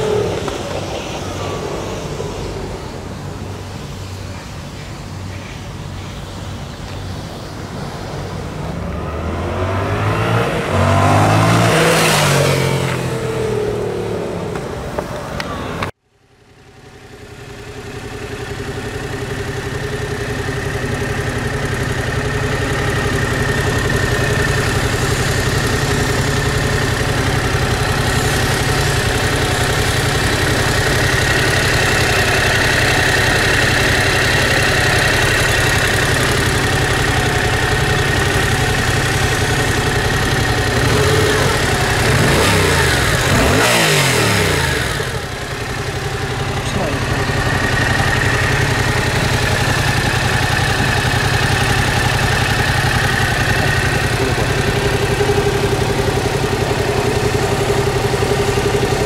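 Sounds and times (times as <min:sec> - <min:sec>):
engine throttle blips: 0:00.0 - 0:16.0, 0:16.7 - 0:59.0
motorcycle engine idling: 0:11.0 - 0:59.0.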